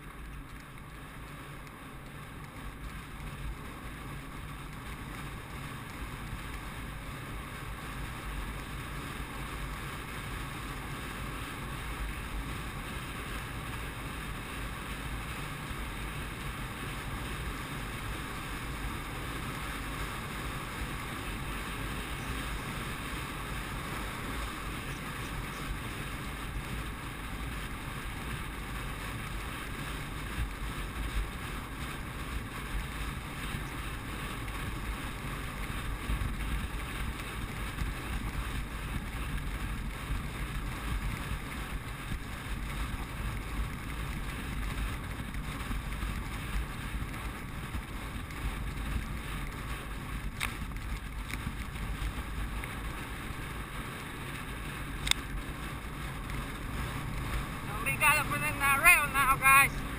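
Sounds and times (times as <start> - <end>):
horse galloping on dirt: 0.0 - 59.9
wind rush on microphone: 0.0 - 59.9.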